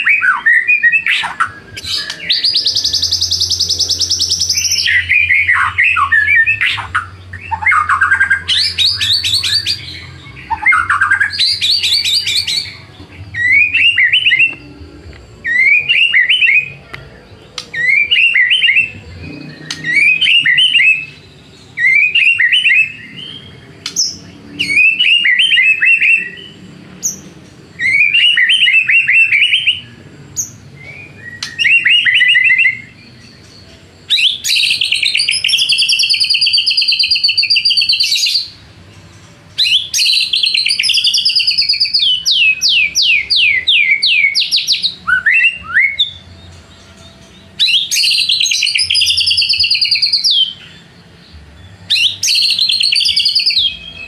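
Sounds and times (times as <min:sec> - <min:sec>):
bird singing: 0:00.0 - 0:54.0.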